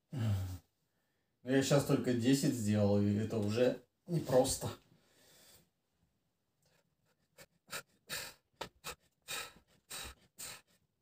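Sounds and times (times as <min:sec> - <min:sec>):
man breathing hard: 0:07.3 - 0:10.9.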